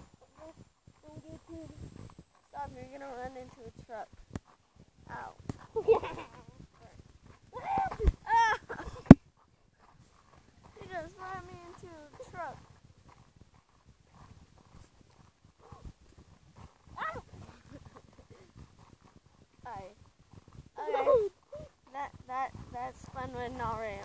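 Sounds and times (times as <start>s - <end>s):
kids laughing: 5.7s - 6.6s, 7.6s - 9.2s, 20.8s - 21.3s.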